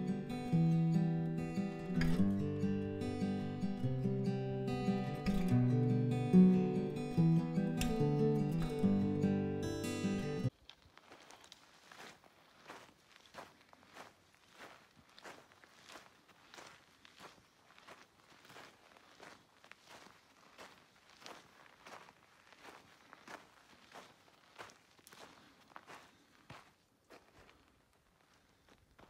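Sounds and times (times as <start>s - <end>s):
footsteps on dirt and stone: 10.5s - 29.0s.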